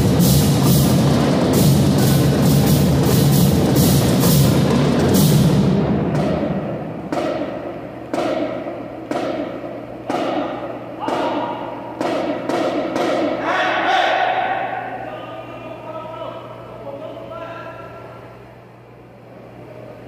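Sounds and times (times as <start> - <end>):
loud unison drum hits: 0.0 - 13.4.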